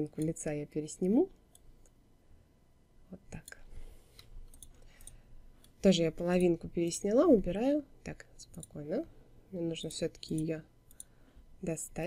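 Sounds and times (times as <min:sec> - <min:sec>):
computer mouse clicks: 0:00.2 - 0:00.4, 0:03.4 - 0:06.6, 0:08.4 - 0:08.8, 0:10.2 - 0:11.2.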